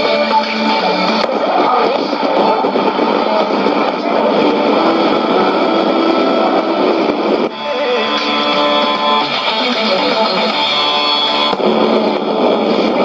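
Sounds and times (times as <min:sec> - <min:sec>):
garbled radio signals: 0:00.0 - 0:13.0
guitar music on radio: 0:00.0 - 0:13.0.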